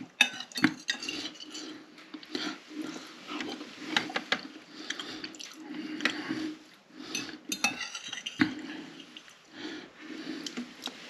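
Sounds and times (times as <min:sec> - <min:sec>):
fork clinking on a plate: 0:00.2 - 0:01.5, 0:07.2 - 0:08.4.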